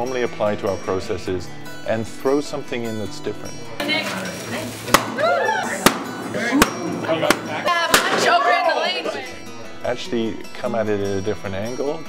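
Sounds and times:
excited voices: 5.0s - 9.4s
sharp cracks: 5.8s - 8.3s.

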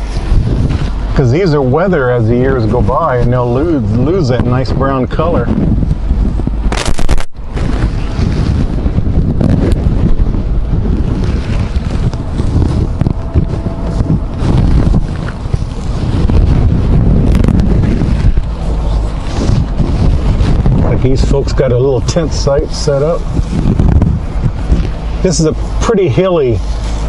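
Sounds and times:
vehicle rumble: 0.0s - 27.0s
wind buffeting microphone: 0.0s - 27.0s.

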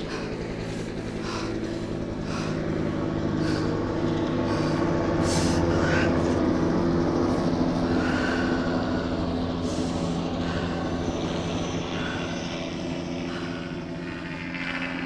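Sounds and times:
vehicle interior engine drone: 0.0s - 15.0s.

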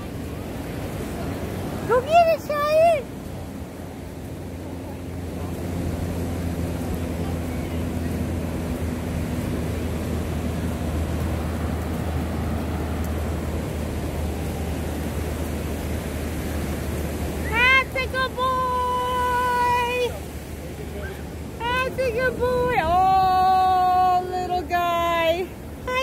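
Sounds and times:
ocean surf breaking: 0.0s - 26.0s
wind rumble on microphone: 0.0s - 26.0s.

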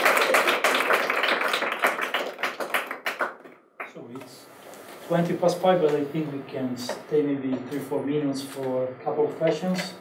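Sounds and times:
small audience applauding: 0.0s - 4.0s.

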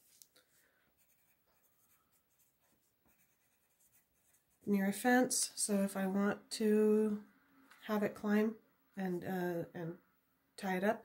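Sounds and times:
pencil scratching on paper: 1.0s - 4.7s.

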